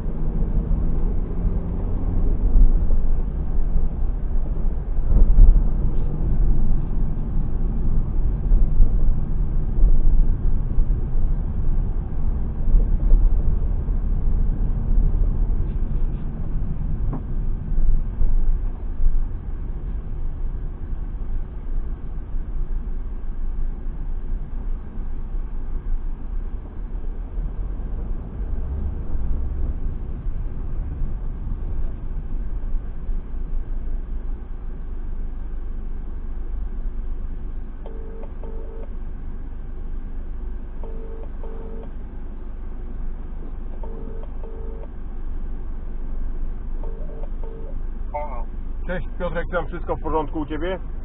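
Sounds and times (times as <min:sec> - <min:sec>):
car engine and tyres on wet road: 0:00.0 - 0:51.0
phone ringing: 0:37.9 - 0:38.9, 0:40.8 - 0:41.9, 0:43.8 - 0:44.9, 0:46.8 - 0:47.7.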